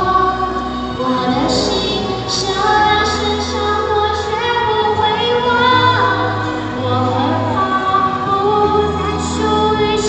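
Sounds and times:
instrumental accompaniment: 0.0s - 9.9s
woman singing pop song: 0.0s - 10.0s.

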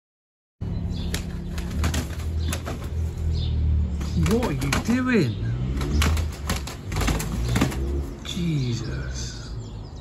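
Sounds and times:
pigeon wings flapping: 1.1s - 3.1s, 5.8s - 8.0s.

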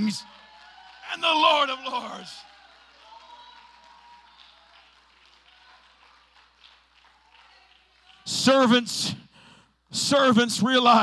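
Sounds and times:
scattered hand clapping: 0.3s - 8.3s.

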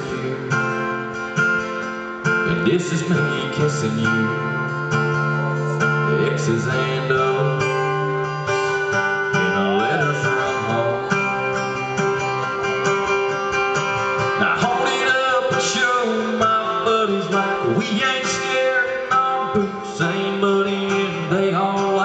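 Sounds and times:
acoustic guitar country ballad: 0.0s - 22.0s.

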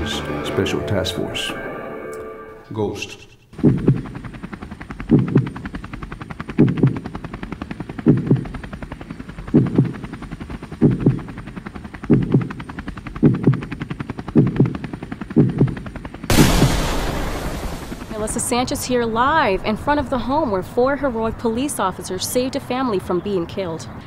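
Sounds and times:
helicopter rotor chop: 3.5s - 23.7s.

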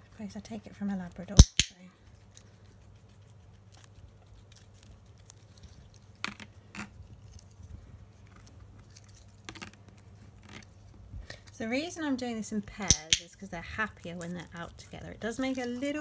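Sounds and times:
guinea pigs chewing: 0.0s - 16.0s.

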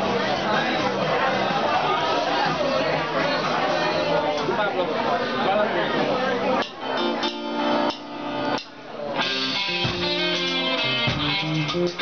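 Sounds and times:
electric guitar chords: 6.6s - 12.0s
rock band playing: 6.6s - 12.0s.

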